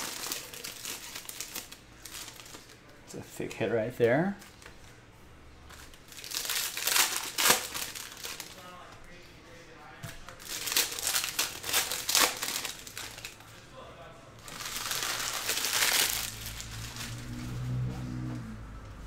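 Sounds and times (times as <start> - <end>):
foil wrappers crinkling: 0.0 - 2.9, 5.6 - 8.9, 10.0 - 13.6, 14.4 - 17.4.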